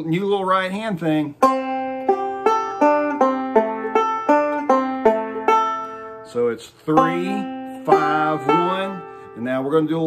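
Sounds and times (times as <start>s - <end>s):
banjo picked slowly: 0.9s - 10.0s.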